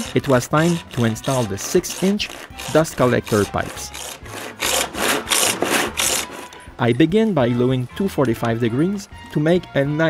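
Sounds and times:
handsaw cutting plastic pipe: 0.0s - 6.7s.

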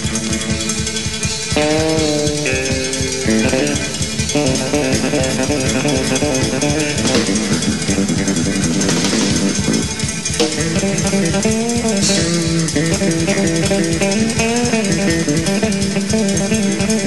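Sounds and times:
drums: 0.0s - 17.0s
electric bass playing: 0.0s - 17.0s.

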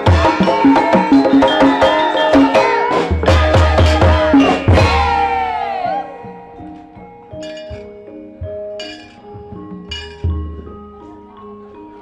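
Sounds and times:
metallophones ringing melody: 0.0s - 12.0s
sharp metallic clinks of plates: 7.3s - 8.0s, 8.8s - 10.5s.

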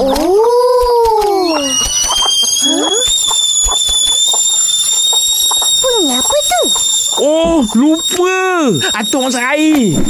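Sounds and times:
kettle whistling: 1.3s - 10.0s.

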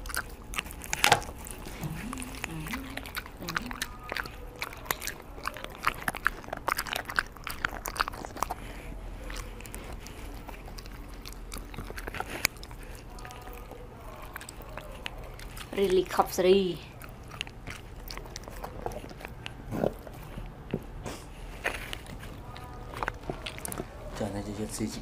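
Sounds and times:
teeth clicking: 0.0s - 21.0s, 21.7s - 24.1s
dog chewing and licking: 0.0s - 25.0s.

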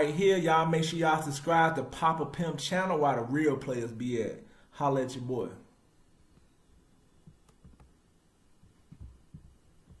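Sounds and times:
faint low thuds: 8.6s - 10.0s.

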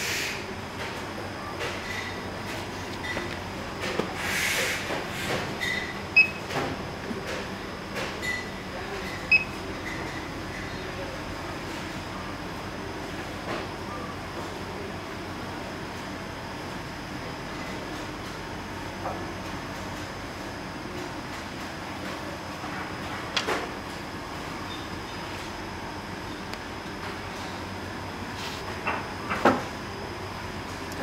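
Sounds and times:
room noise hum: 0.0s - 31.0s.

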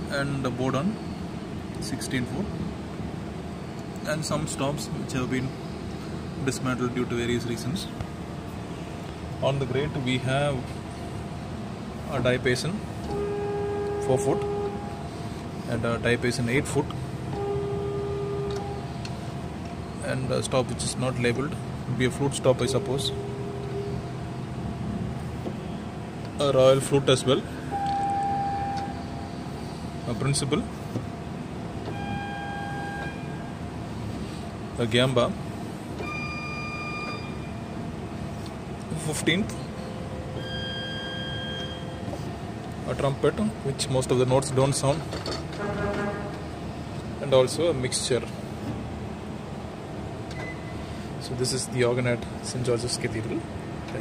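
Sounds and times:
pipe organ note held: 13.0s - 15.3s, 17.3s - 19.0s.

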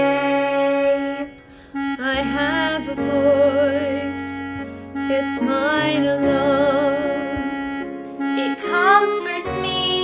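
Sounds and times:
accompaniment chords: 0.0s - 10.0s
person singing ballad: 0.0s - 10.0s.

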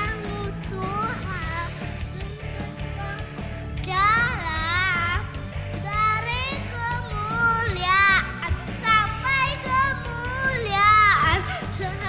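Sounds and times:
boy singing into microphone: 0.0s - 5.2s, 5.9s - 12.0s
backing track music: 0.0s - 12.0s.

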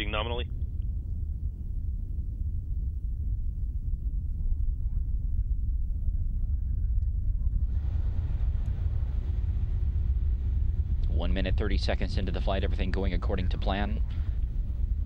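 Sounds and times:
distant rocket engine rumble: 0.0s - 15.0s.

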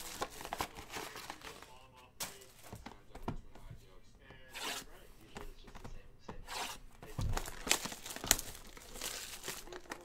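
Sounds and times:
plastic wrap tearing: 0.0s - 2.6s, 6.5s - 10.0s.

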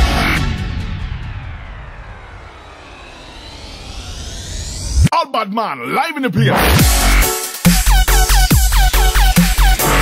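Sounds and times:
falling synth sweep: 0.0s - 5.1s
rising synth sweep: 0.0s - 5.1s
processed sampled voice: 5.0s - 6.8s.

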